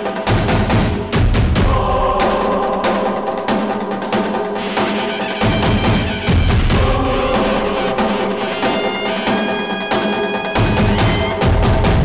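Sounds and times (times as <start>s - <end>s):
dramatic background score: 0.0s - 12.0s
rapid drum and wood-block strikes: 0.0s - 12.0s
deep drum: 0.2s - 9.3s.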